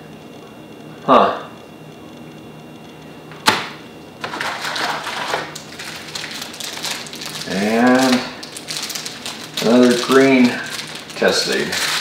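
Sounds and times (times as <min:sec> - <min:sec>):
plastic bag crinkling: 0:04.2 - 0:12.0.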